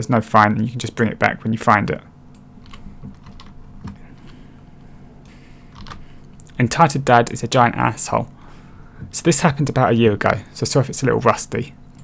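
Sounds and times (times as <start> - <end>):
low steady hum: 0.0 - 12.0
soft keyboard typing: 2.6 - 3.6, 5.7 - 6.0.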